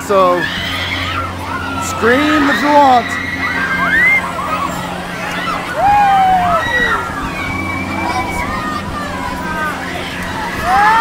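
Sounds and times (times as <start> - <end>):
low hum of ride machinery: 0.0 - 11.0
high voices calling and squealing: 0.1 - 10.6.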